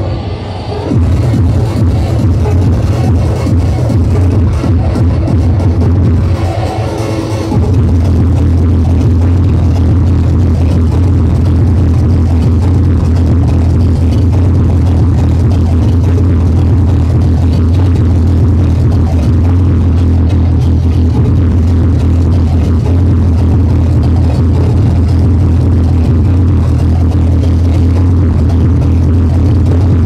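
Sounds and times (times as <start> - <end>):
loud hardcore techno: 0.0 - 30.0
heavy bass kick: 0.9 - 6.7, 7.5 - 30.0.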